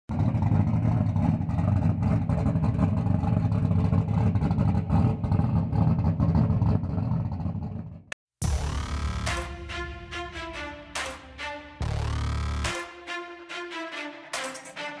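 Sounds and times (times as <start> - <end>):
race car engines at high revs: 0.1 - 7.9.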